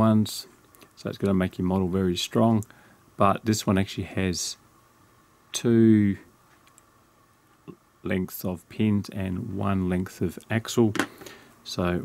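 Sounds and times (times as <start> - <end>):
person speaking: 0.0 - 4.6, 7.7 - 12.0.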